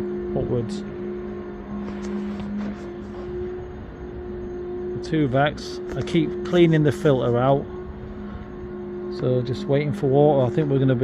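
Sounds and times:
cleaning machine engine hum: 0:00.0 - 0:11.0.

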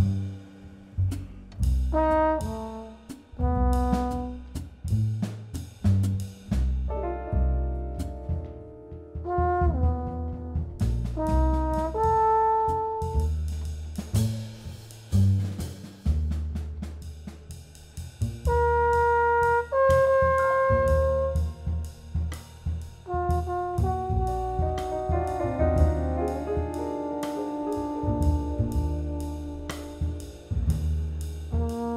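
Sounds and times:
bass: 0:00.0 - 0:31.9
drum kit: 0:00.0 - 0:31.9
brass instrument melody: 0:01.9 - 0:04.6, 0:09.1 - 0:13.4, 0:18.5 - 0:22.4, 0:23.0 - 0:31.9.

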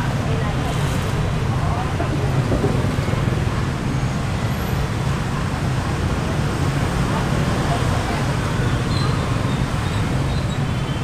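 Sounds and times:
motorbikes and cars passing: 0:00.0 - 0:11.0.

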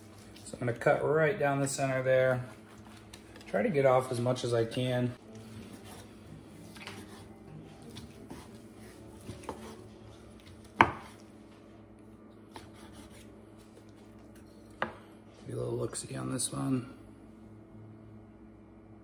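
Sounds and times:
knife slicing on wooden cutting board: 0:07.9 - 0:09.8, 0:10.4 - 0:11.2, 0:12.5 - 0:13.3
knife knocking on board: 0:10.8 - 0:11.1.

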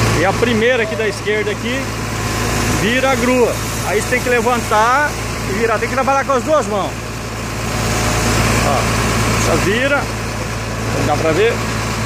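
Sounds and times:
truck engine running: 0:00.0 - 0:12.0.

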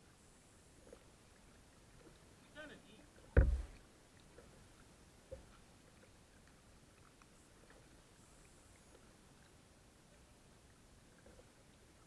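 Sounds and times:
knock on plastic kayak hull: 0:03.3 - 0:03.8.

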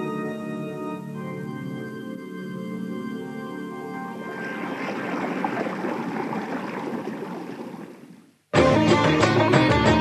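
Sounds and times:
rushing water-like noise: 0:04.1 - 0:08.4.

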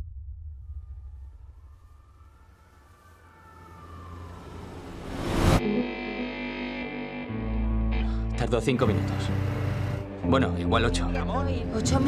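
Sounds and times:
rising whoosh: 0:00.0 - 0:06.1
distant siren wailing: 0:00.6 - 0:05.6
sustained music chord: 0:02.8 - 0:12.0.

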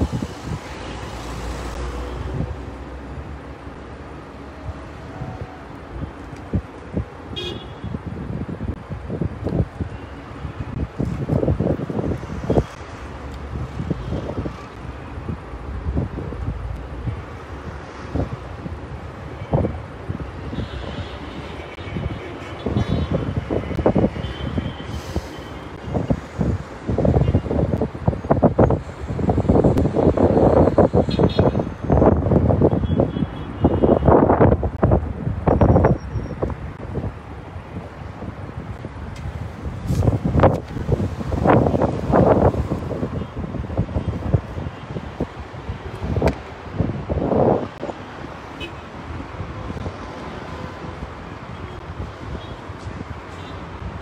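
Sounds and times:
traffic: 0:00.0 - 0:54.0
wind rumbling on microphone: 0:00.0 - 0:54.0.

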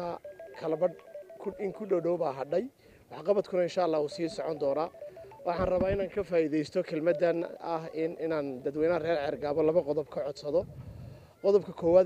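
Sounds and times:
person talking: 0:00.0 - 0:10.5.

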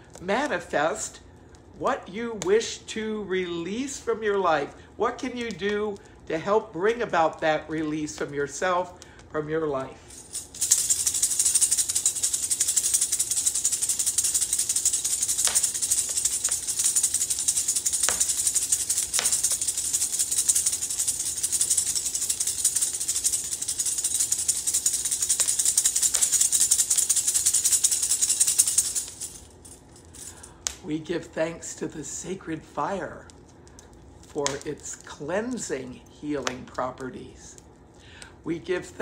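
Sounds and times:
sistrum metallic jingling: 0:10.1 - 0:30.4.

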